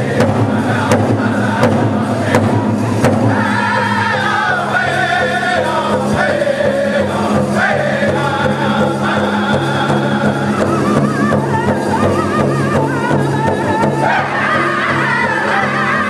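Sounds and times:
chorus of high-pitched voices: 0.0s - 16.0s
large drum beating in unison: 0.0s - 16.0s.

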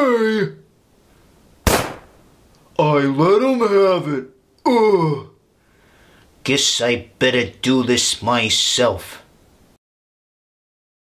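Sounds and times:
sharp gunshot-like bang: 1.6s - 2.2s.

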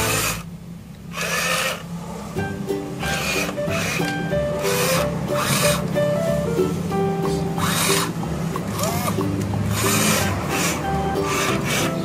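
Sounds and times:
plastic toy scraping sandy ground: 0.0s - 0.5s, 1.1s - 1.8s, 3.0s - 5.9s, 7.4s - 12.0s
background music with held notes: 2.0s - 12.0s.

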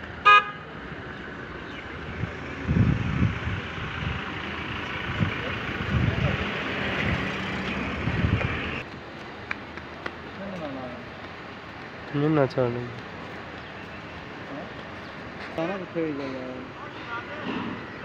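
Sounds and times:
vehicle horn toot: 0.2s - 0.6s.

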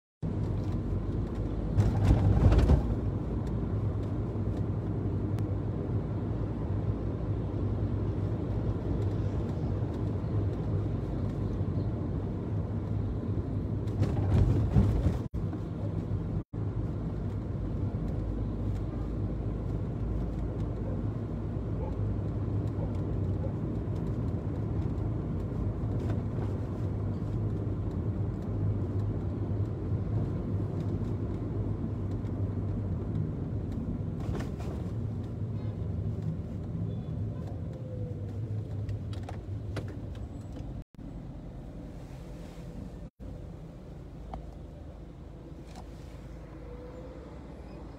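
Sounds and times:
car engine and road noise: 0.2s - 47.9s.

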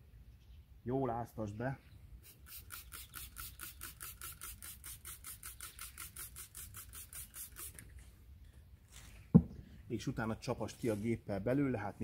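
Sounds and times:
spray bottle squirting: 2.2s - 8.1s.

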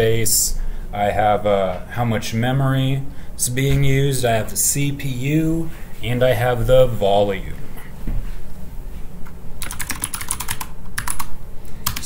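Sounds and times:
computer keyboard typing: 9.6s - 12.0s.

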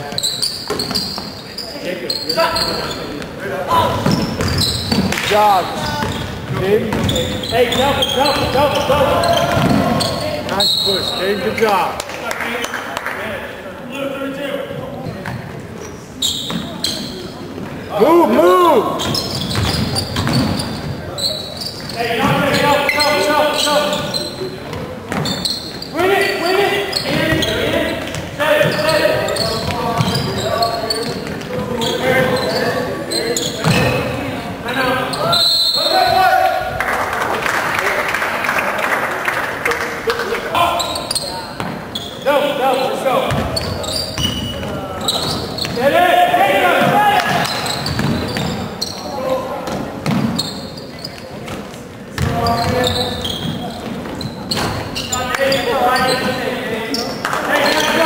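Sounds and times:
crowd noise: 0.0s - 58.0s
ball bouncing on hardwood court: 4.0s - 7.8s, 9.3s - 10.6s, 19.0s - 20.7s, 24.7s - 25.4s, 43.3s - 44.5s, 46.8s - 48.6s, 49.6s - 50.5s, 51.2s - 54.9s.

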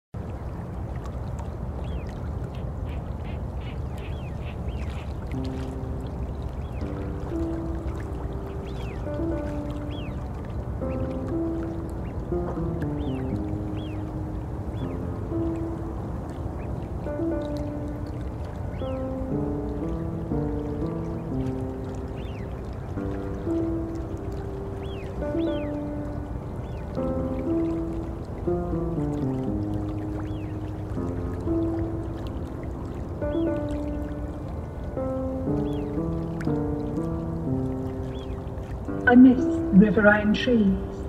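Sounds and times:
river water rushing: 0.2s - 41.0s
slow melody of held notes: 3.9s - 41.0s.

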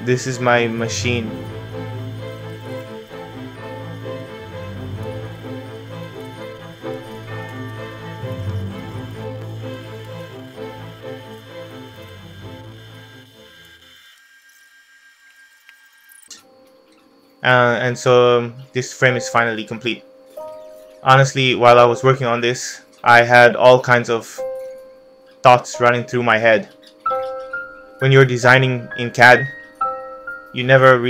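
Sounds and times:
background music with held notes: 0.0s - 13.8s, 16.4s - 31.0s.

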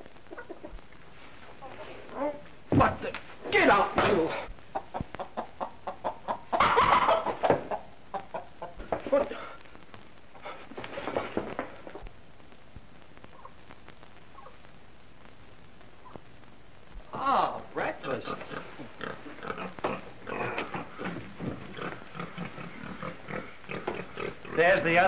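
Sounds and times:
hen clucking and squawking: 0.2s - 0.8s, 4.7s - 8.8s.

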